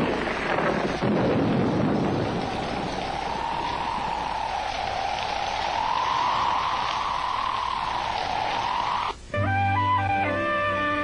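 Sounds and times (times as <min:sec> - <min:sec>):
wind whistling: 0:00.0 - 0:09.3
steady rain hiss: 0:00.0 - 0:11.0.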